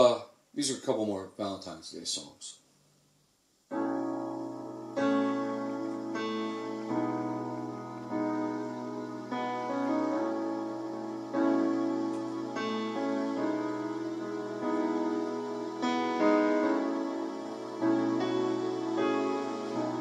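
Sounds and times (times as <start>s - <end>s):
piano playing slow chords: 3.7s - 20.0s.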